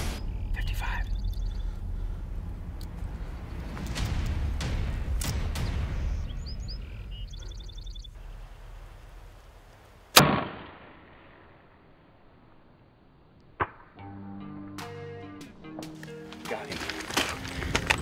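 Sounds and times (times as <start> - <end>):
high chirps: 0.0 - 1.9, 5.3 - 8.2
low wind rumble: 0.0 - 10.2, 16.7 - 18.0.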